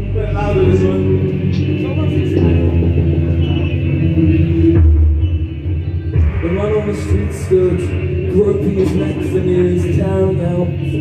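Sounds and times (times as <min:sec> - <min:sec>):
amplified electric guitar: 0:00.0 - 0:11.0
steady low drone: 0:00.0 - 0:11.0.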